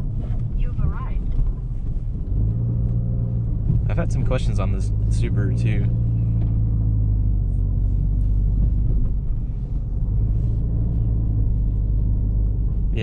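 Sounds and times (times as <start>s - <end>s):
car cabin engine and road rumble: 0.0s - 13.0s.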